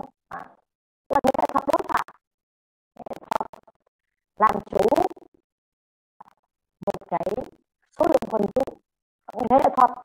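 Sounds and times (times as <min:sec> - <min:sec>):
crackling voice with clicks: 0:00.0 - 0:02.2, 0:03.0 - 0:05.4, 0:06.2 - 0:10.0.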